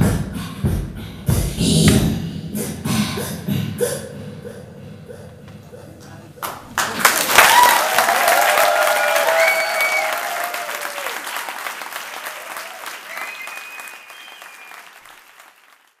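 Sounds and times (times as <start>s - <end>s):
audience applauding: 6.4s - 16.0s
audience cheering: 6.4s - 16.0s.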